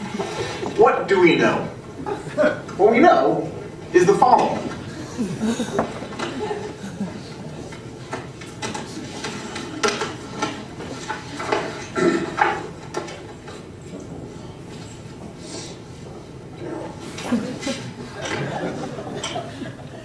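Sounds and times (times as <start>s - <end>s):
indistinct low voices: 0.0s - 10.2s.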